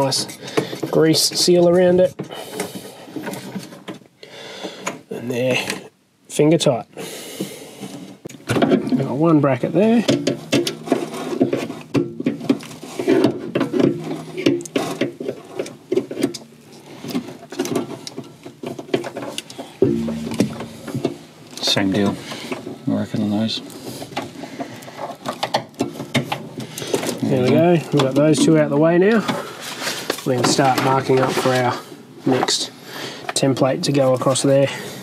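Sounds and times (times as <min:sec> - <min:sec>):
clicks and rattles of hand tools: 0:09.9 - 0:22.7.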